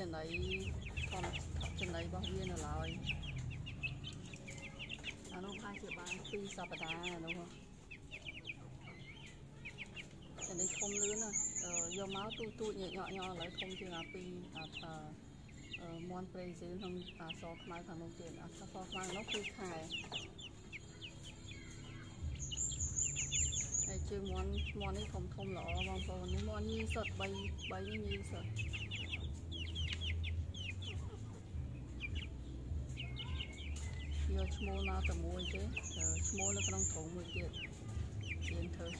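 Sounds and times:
chicks peeping: 0:00.0 - 0:38.9.

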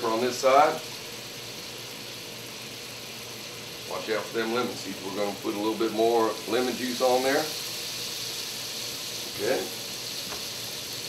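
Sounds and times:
fish frying in butter: 0:00.0 - 0:11.0.

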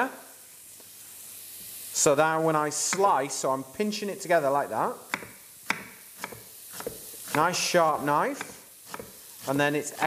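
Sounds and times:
garlic sizzling in oil: 0:00.0 - 0:10.0.

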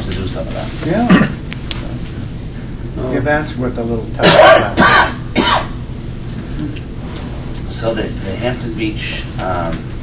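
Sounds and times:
person coughing: 0:01.0 - 0:01.4, 0:04.2 - 0:05.8.

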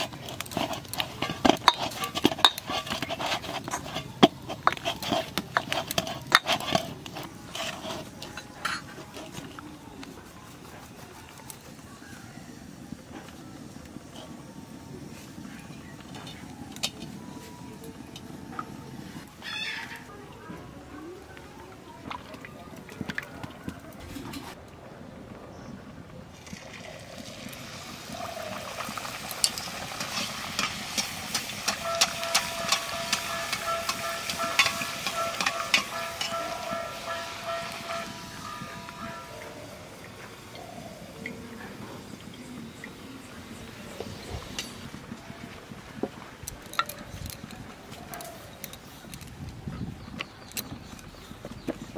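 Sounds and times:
slotted spoon turning bread in oil: 0:00.0 - 0:09.6
bread deep-frying in hot oil: 0:26.2 - 0:38.5.

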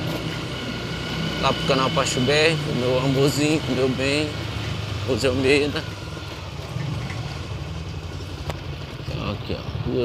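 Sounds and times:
motorcycle engine rumbling: 0:00.0 - 0:10.0.

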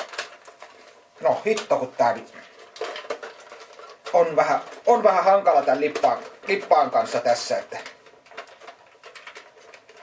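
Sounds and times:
person speaking: 0:01.2 - 0:02.6, 0:03.8 - 0:08.1.

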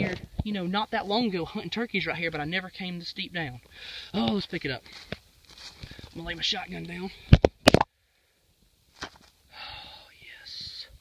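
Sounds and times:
knocks and scrapes of handling: 0:09.0 - 0:09.4.

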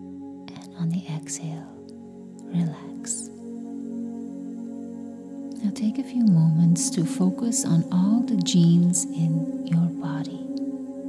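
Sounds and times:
ambient drone chord: 0:00.0 - 0:11.0
soft whisper-like vocals: 0:00.5 - 0:03.4.

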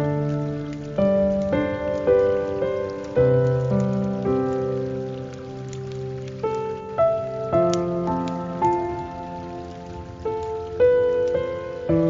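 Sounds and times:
hiss of falling water: 0:00.0 - 0:12.0.

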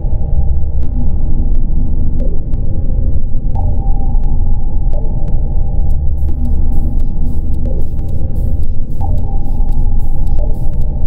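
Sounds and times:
deep rumbling ambient drone: 0:00.0 - 0:11.0.

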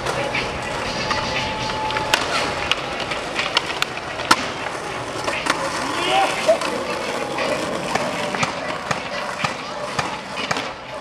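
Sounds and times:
skateboard wheels rolling on paving: 0:00.0 - 0:11.0
skateboard landing clack: 0:01.9 - 0:10.8.

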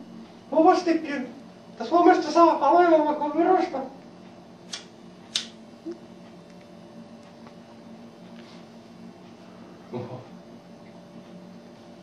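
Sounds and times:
faint steady hum: 0:00.0 - 0:12.0
cigarette lighter clicks: 0:04.7 - 0:05.6.

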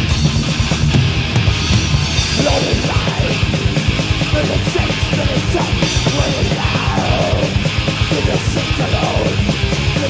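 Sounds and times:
bass guitar: 0:00.0 - 0:10.0
distorted guitars: 0:00.0 - 0:10.0
fast drumming: 0:00.0 - 0:10.0
shouted vocals: 0:02.4 - 0:03.6, 0:04.3 - 0:10.0.

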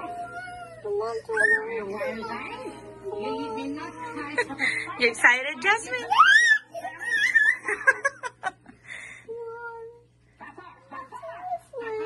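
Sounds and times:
child squealing: 0:06.1 - 0:07.6.

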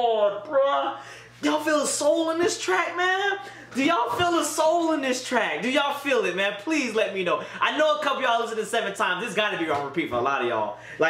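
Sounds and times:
person rapping: 0:00.0 - 0:10.5.

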